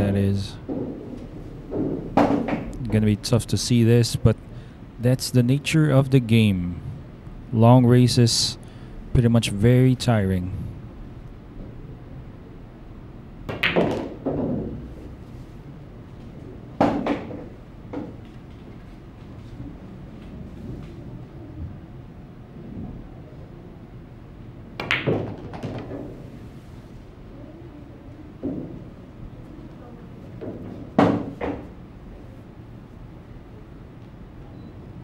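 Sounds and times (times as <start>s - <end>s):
low room hum: 0.0s - 35.0s
pool balls clicking: 0.6s - 3.0s, 13.5s - 15.0s, 16.8s - 18.7s, 24.8s - 26.2s.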